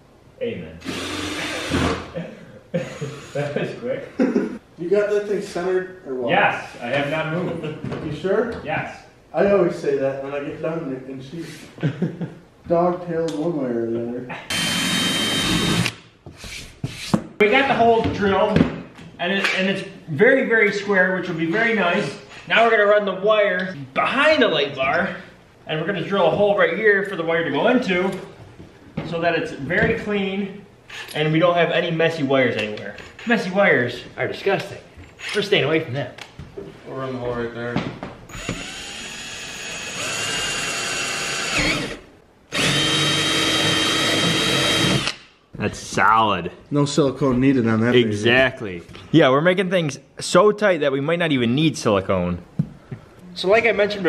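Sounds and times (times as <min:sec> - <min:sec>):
cordless drill whining: 0:00.8 - 0:02.0, 0:14.5 - 0:16.0, 0:38.3 - 0:45.2.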